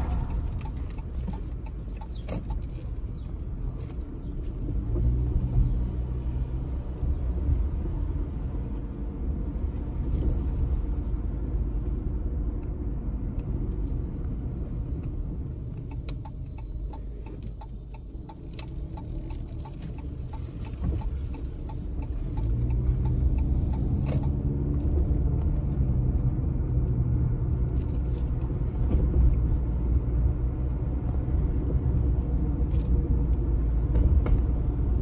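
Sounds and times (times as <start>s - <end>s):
car engine and road noise: 0.0s - 35.0s
light ticks: 15.0s - 24.4s.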